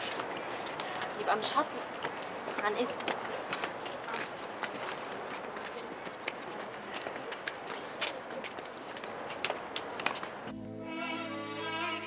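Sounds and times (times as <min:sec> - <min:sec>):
outdoor background noise: 0:00.0 - 0:12.0
footsteps on hard path: 0:02.0 - 0:10.6
soft string music with violin: 0:10.5 - 0:12.0.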